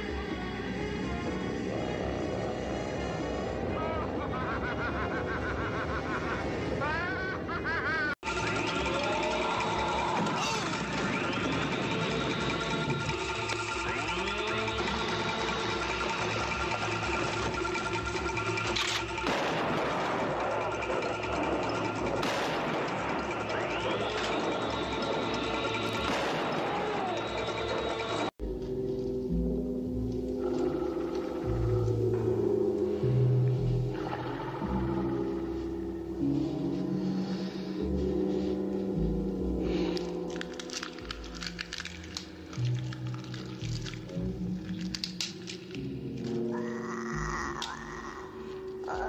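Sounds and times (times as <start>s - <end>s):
film score with sustained tones: 0.0s - 49.0s
dense noisy action mix: 8.2s - 28.3s.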